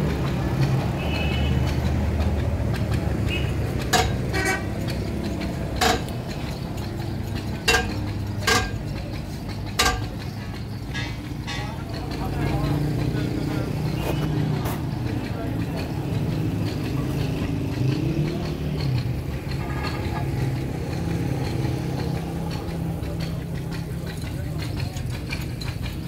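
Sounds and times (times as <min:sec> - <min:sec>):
indistinct voices: 0:00.0 - 0:26.0
vehicle engine rumbling: 0:00.0 - 0:26.0.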